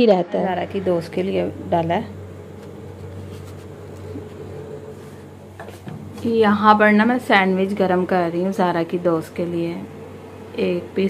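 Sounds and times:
electrical hum of kitchen appliance: 0:00.0 - 0:11.0.

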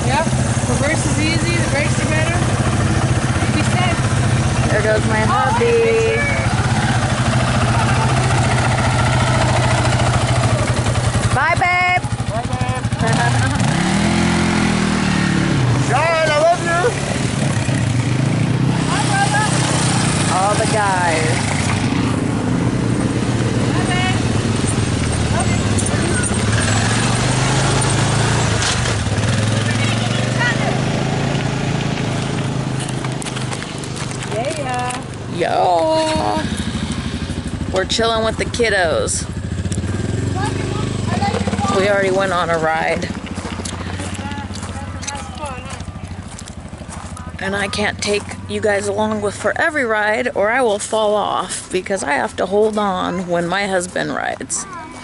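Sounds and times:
quad engines running: 0:00.0 - 0:55.0.

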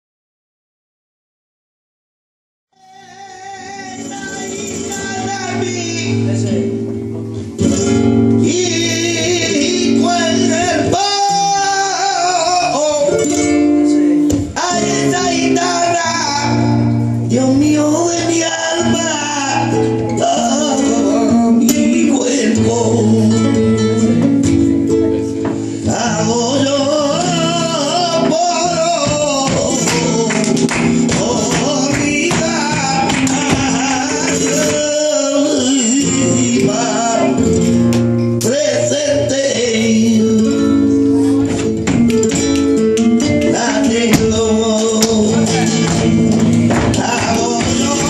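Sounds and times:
man singing flamenco: 0:02.7 - 0:48.0
flamenco guitar: 0:02.8 - 0:48.0
rhythmic hand-clapping: 0:28.4 - 0:35.2, 0:41.6 - 0:48.0.

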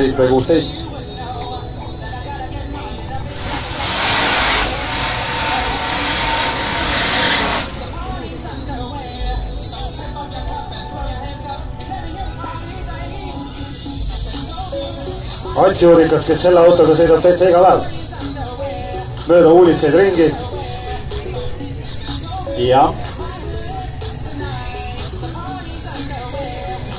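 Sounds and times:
music over loudspeakers: 0:00.0 - 0:26.9
cars launching with spinning tyres: 0:03.3 - 0:09.1.

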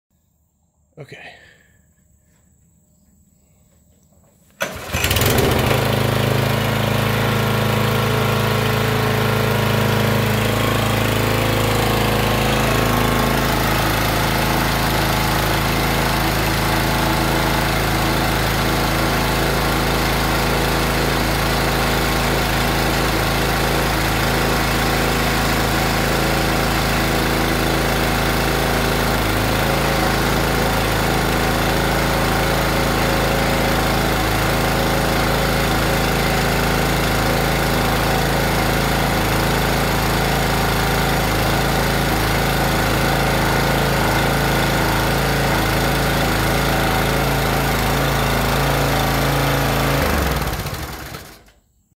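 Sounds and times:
log splitter engine running: 0:04.6 - 0:51.6.

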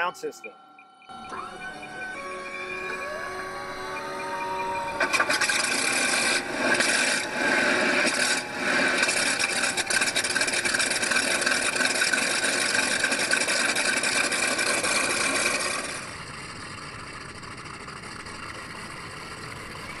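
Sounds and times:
simulated engine sound from speaker: 0:00.0 - 0:20.0.

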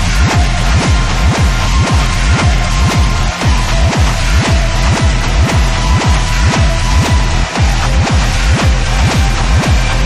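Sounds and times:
distorted synth noise: 0:00.0 - 0:10.0
electronic kick drum: 0:00.0 - 0:10.0.

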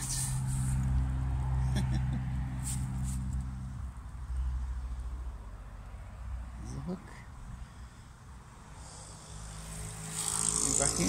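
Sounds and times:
vehicle engine approaching: 0:00.0 - 0:07.0, 0:07.8 - 0:11.0.

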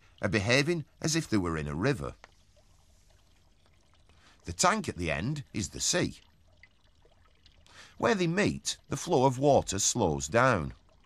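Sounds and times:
water pouring into a tank: 0:00.0 - 0:11.0.

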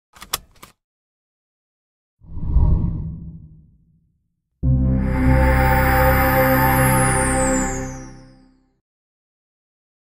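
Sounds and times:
low whoosh rush: 0:02.3 - 0:04.1.

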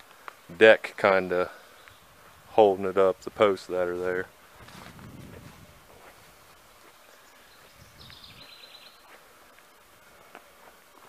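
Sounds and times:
outdoor background noise: 0:00.0 - 0:11.0
bird trilling: 0:07.2 - 0:09.0.

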